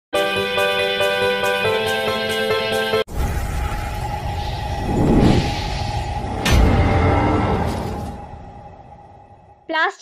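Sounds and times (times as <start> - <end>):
whoosh: 3.1 - 8.7
deep rumble: 3.1 - 9.5.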